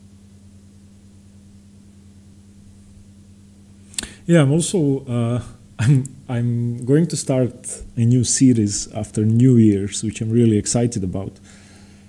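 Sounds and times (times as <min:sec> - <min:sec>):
low electrical hum: 0:00.0 - 0:12.0
faint hiss: 0:03.7 - 0:12.0.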